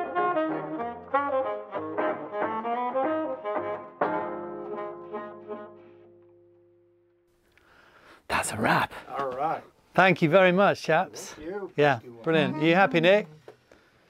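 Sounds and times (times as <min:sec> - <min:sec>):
clarinet: 0:00.0 - 0:06.4
small jazz band playing: 0:00.0 - 0:06.5.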